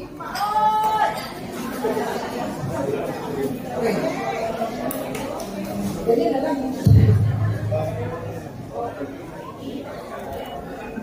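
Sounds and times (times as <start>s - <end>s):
guests chattering: 0.0s - 11.0s.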